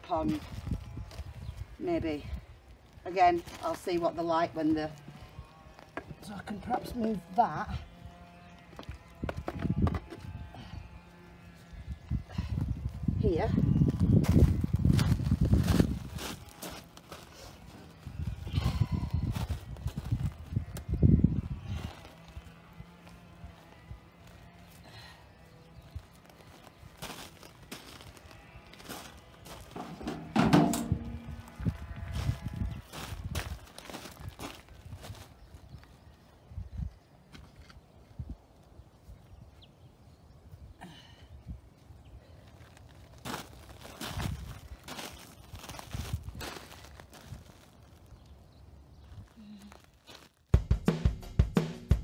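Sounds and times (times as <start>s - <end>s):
boots crunching on gravel: 13.7s - 21.0s, 21.6s - 36.2s, 42.6s - 50.6s.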